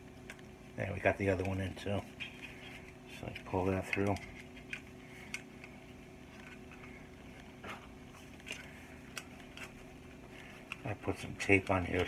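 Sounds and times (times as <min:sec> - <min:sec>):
low steady hum: 0:00.0 - 0:12.0
wires rustling through plastic: 0:00.0 - 0:12.0.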